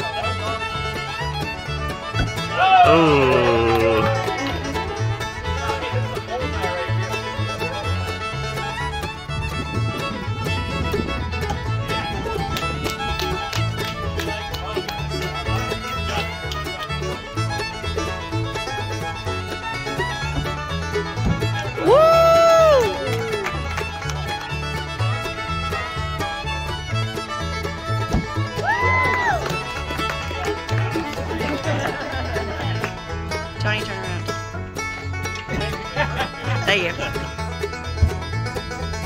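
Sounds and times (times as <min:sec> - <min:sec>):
banjo: 0:00.0 - 0:39.0
fiddle: 0:00.0 - 0:39.0.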